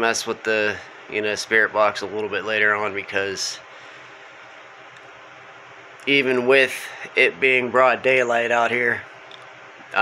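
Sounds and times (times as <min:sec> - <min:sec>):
low background hiss: 0:00.0 - 0:10.0.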